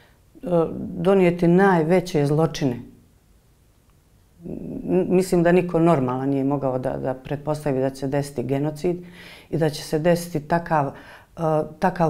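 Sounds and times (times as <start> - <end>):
woman speaking: 0.4 - 3.0, 4.4 - 12.0.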